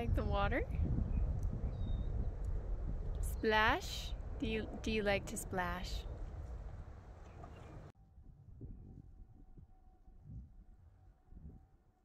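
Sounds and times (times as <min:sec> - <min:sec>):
wind buffeting microphone: 0:00.0 - 0:11.8.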